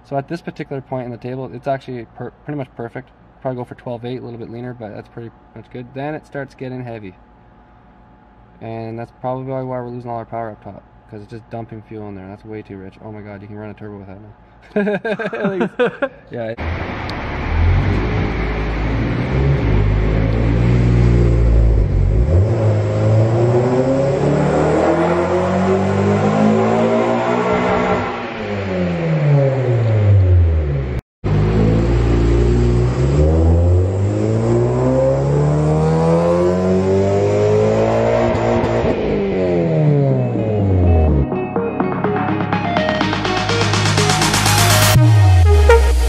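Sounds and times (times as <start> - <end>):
car engine revving: 16.6 - 41.3.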